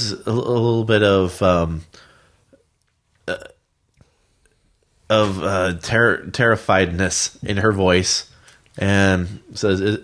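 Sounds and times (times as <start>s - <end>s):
man saying uh: 0.0s - 2.0s, 3.3s - 3.5s, 5.1s - 10.0s.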